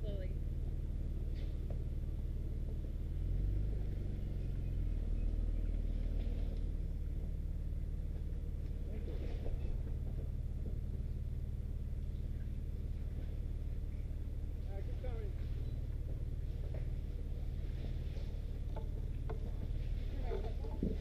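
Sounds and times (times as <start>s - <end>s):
truck engine running at low revs: 0.0s - 21.0s.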